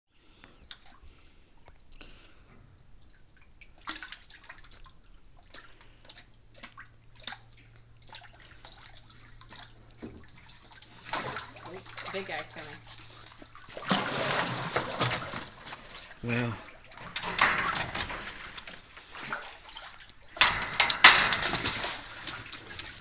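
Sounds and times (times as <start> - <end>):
water sloshing and splashing: 0.2 - 23.0.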